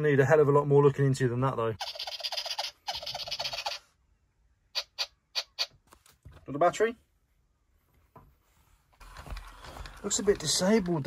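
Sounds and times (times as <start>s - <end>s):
toy rattling chatter: 1.8s - 3.9s.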